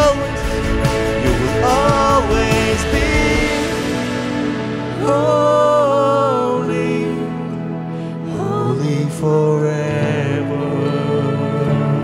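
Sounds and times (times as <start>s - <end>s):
sustained keyboard chords: 0.0s - 12.0s.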